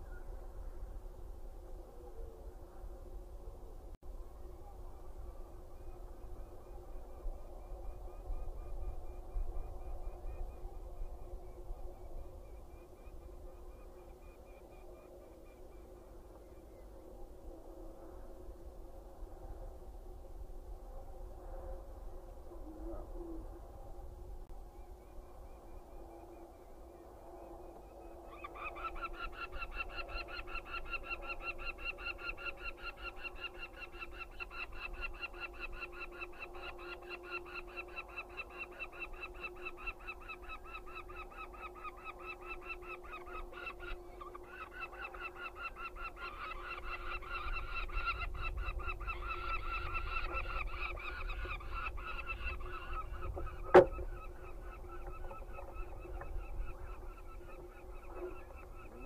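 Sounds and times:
falcon chicks calling: 0:28.3 - 0:59.0
sharp knock: 0:53.7 - 0:54.0.

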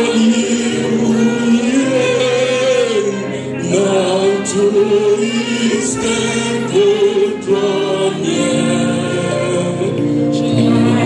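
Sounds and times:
choir singing held notes: 0:00.0 - 0:11.0
man singing into a microphone: 0:00.0 - 0:11.0.

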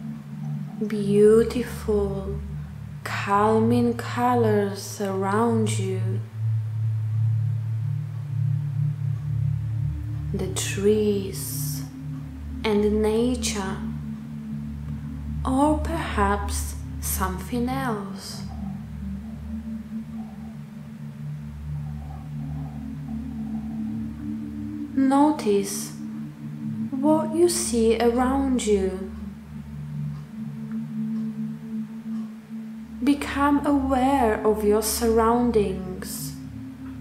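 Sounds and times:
ambient meditation music drone: 0:00.0 - 0:37.0.

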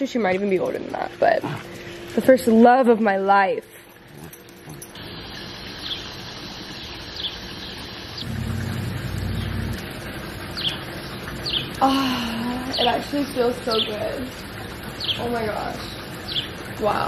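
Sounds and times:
steady outdoor hiss: 0:00.0 - 0:17.0
low rumble: 0:08.2 - 0:10.6.

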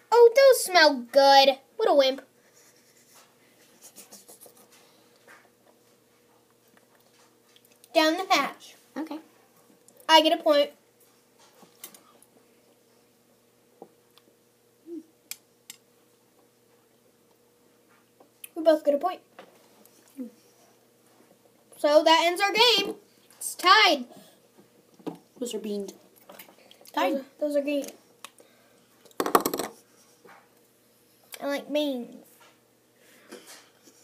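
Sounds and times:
faint steady hum: 0:00.0 - 0:34.0.

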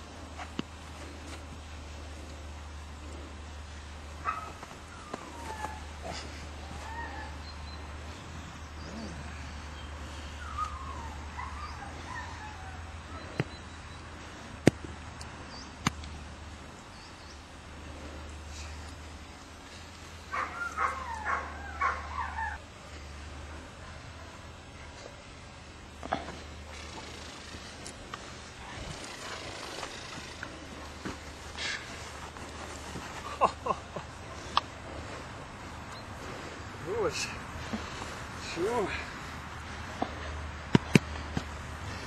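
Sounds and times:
puppy yipping and whining: 0:10.4 - 0:12.8
puppy yelping: 0:20.3 - 0:22.6.

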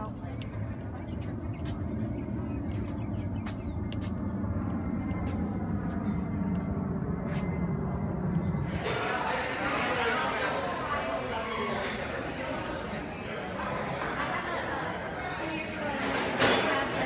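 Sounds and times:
low rumble: 0:00.0 - 0:08.8
faint voices: 0:00.0 - 0:17.0.

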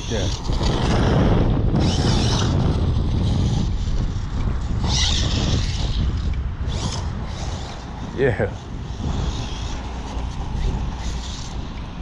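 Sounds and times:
rc buggy motor and tyres: 0:00.0 - 0:12.0
wind rumble on microphone: 0:00.0 - 0:12.0.

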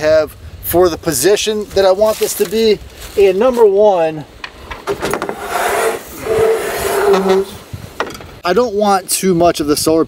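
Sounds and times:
solar panel scraping on roof rack: 0:04.7 - 0:07.7.

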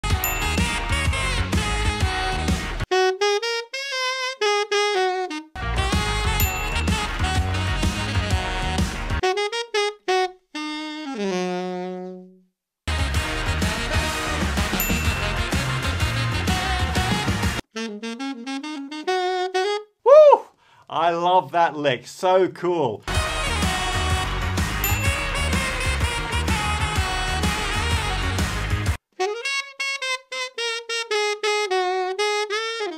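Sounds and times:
funk band playing: 0:00.0 - 0:02.9, 0:05.6 - 0:09.2, 0:12.9 - 0:17.6, 0:23.0 - 0:29.0
solo saxophone funk lick: 0:00.0 - 0:20.5, 0:23.0 - 0:32.9.

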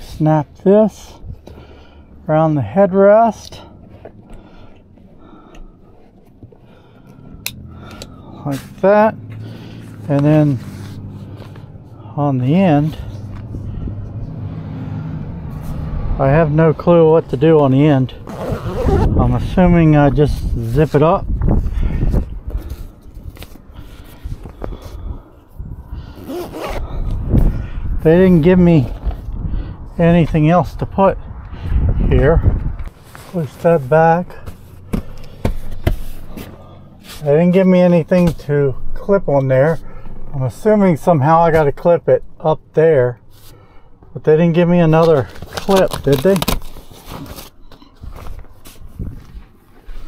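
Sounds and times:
low handling rumble: 0:01.2 - 0:18.3.

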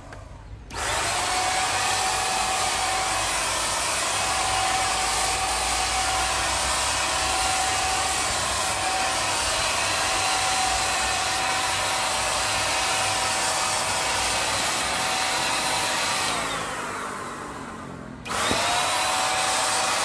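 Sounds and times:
paint sprayer blower rush: 0:00.0 - 0:20.0.

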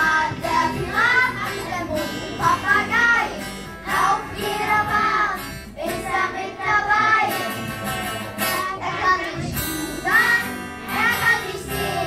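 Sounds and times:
children singing: 0:00.0 - 0:12.0
guitar: 0:00.0 - 0:12.0.

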